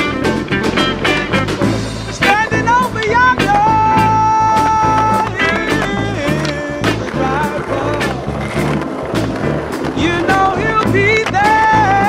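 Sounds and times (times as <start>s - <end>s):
skateboard popping and landing: 0.0s - 12.0s
skateboard wheels rolling on stone: 0.0s - 12.0s
steady drum beat: 0.0s - 12.0s
song with singing: 2.1s - 8.6s, 9.8s - 12.0s.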